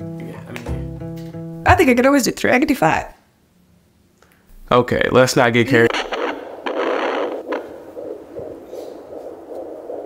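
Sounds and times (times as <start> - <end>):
steady hiss: 4.2 - 10.0
fetal heartbeat on doppler: 5.8 - 10.0.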